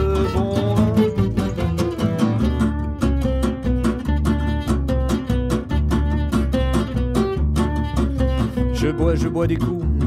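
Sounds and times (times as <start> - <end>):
person singing: 0.0 - 2.4, 8.4 - 10.0
acoustic guitar picking a line: 0.0 - 10.0
acoustic guitar strumming: 0.0 - 10.0
plucked double bass: 0.0 - 10.0.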